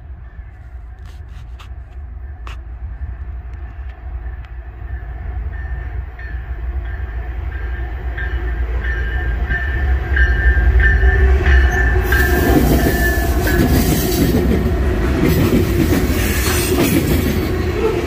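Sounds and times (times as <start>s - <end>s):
diesel locomotives rumbling past: 0.0s - 18.0s
high ringing tone: 7.6s - 13.9s
freight cars rushing and clattering: 12.0s - 18.0s.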